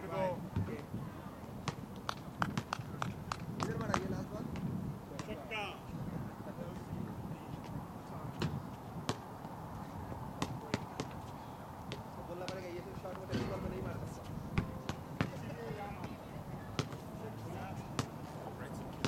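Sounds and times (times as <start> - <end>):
people clapping: 2.0 - 4.0
faint background voices: 2.8 - 19.0.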